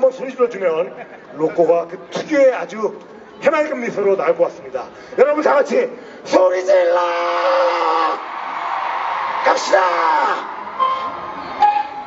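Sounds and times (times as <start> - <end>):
man shouting into a microphone: 5.2 - 8.3, 9.4 - 10.5
crowd screaming and cheering: 7.0 - 12.0.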